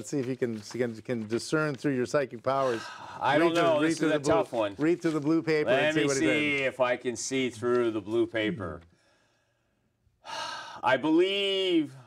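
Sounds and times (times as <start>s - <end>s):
man speaking: 0.0s - 8.9s, 10.8s - 12.0s.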